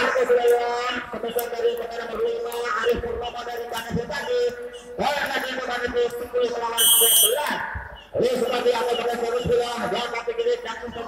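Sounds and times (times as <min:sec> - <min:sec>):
voice over public address: 0:00.0 - 0:11.0
referee's whistle blast: 0:06.8 - 0:07.5.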